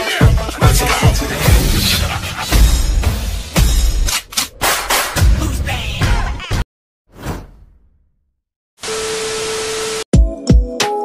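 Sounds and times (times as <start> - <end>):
intro music: 0.0 - 5.4
downward whoosh sound effect: 0.8 - 3.7.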